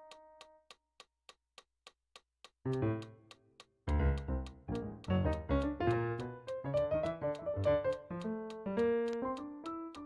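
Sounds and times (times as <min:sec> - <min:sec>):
metronome clicking: 0:00.0 - 0:01.1, 0:02.4 - 0:10.0.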